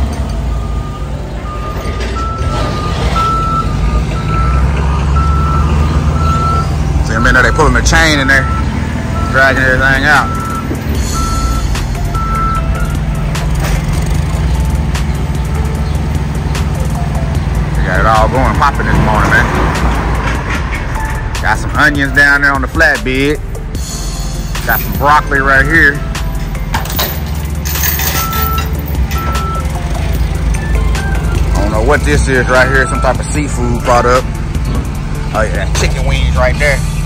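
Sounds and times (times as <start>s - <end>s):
forklift engine drone: 0.0s - 37.0s
backup beeper: 0.5s - 13.0s
short beeps: 10.2s - 12.9s, 28.2s - 29.7s.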